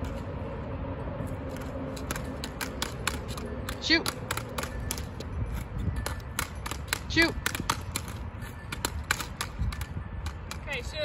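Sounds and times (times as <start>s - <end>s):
hockey stick tapping plastic ball: 2.0s - 5.2s, 6.0s - 10.6s.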